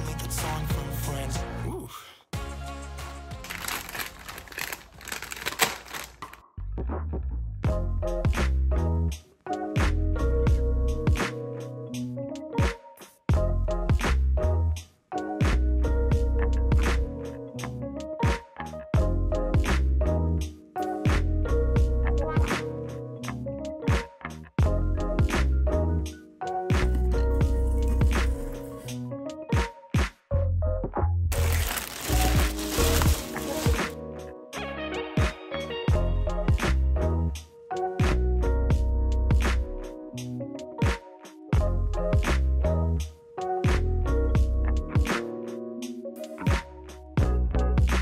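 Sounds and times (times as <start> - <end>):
pop music: 0.0 - 1.8, 32.0 - 36.9
foil mailer bag crinkling: 3.3 - 6.4, 31.3 - 34.0
pop music with kick drum: 9.8 - 11.3, 12.6 - 14.2, 18.2 - 18.4, 21.1 - 22.6, 23.9 - 25.4, 29.5 - 30.2, 35.2 - 36.8, 40.8 - 41.0, 41.6 - 42.4, 43.7 - 45.2, 46.4 - 48.0.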